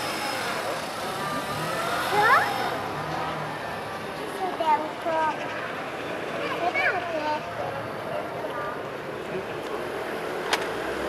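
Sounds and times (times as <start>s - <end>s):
distant traffic hum: 0.0s - 11.0s
faint voices: 0.2s - 10.4s.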